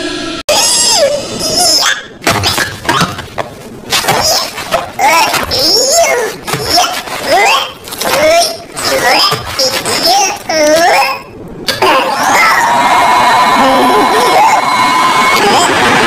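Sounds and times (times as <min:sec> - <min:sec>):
high voice crying: 0:04.1 - 0:12.8, 0:13.6 - 0:15.9.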